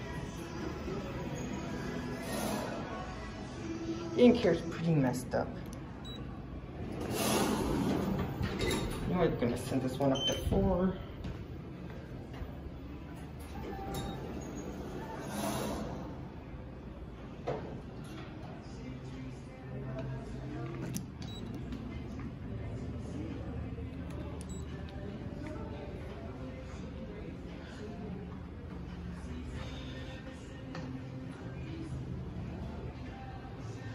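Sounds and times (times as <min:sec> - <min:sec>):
soft background music: 0:00.0 - 0:33.9
elevator doors sliding open: 0:06.9 - 0:09.4.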